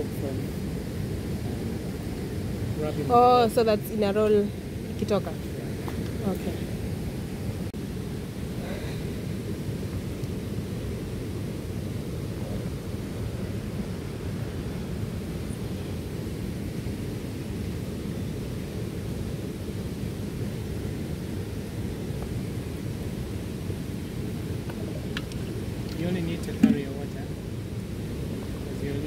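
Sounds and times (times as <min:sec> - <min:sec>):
low rumbling outdoor noise: 0:00.0 - 0:29.0.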